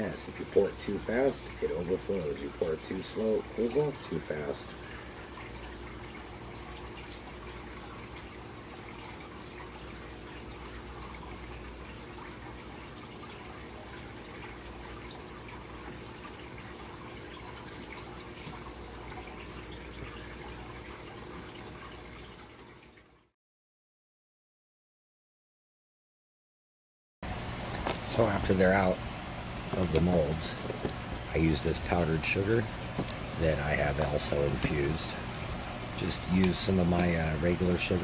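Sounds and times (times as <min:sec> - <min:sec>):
low steady hum: 0:27.2 - 0:38.0
even hiss: 0:27.5 - 0:38.0.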